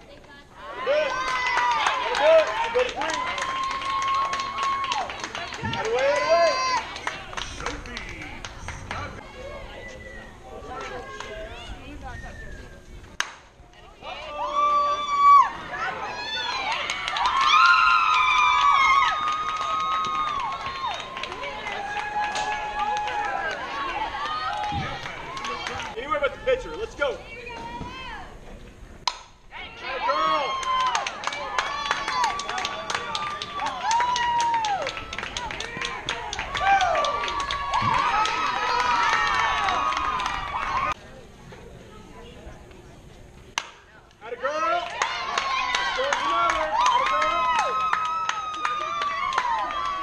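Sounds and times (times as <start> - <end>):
players and spectators shouting: 0.6 - 12.0, 14.0 - 28.3, 29.5 - 41.0
bat cracking against ball: 29.0 - 29.4.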